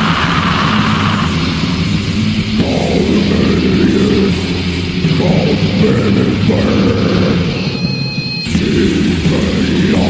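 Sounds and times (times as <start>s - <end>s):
distorted metal band playing: 0.0s - 10.0s.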